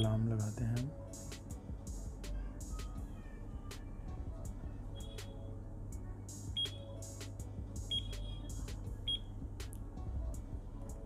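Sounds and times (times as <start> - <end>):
alarm clock beeping: 7.9 - 8.4.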